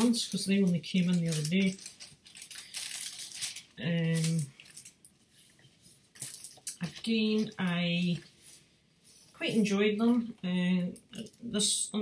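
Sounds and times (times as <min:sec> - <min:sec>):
paper rustling: 0:00.0 - 0:09.4.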